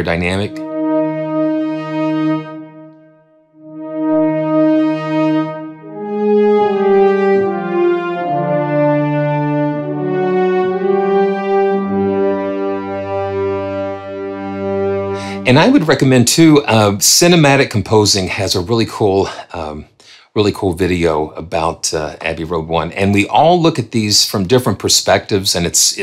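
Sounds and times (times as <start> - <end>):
low bass note: 0.0 - 16.9
sustained brass chords: 0.0 - 25.0.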